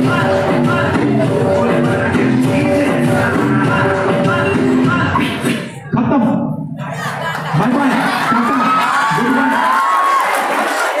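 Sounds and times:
audience cheering and shouting: 6.8 - 11.0.

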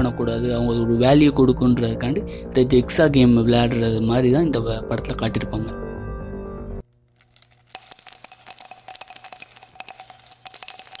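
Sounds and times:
small bells ringing: 7.2 - 11.0.

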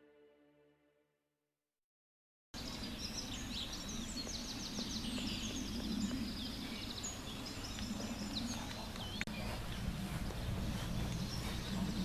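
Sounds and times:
bird chirp: 2.6 - 12.0
low rumble: 9.2 - 12.0.

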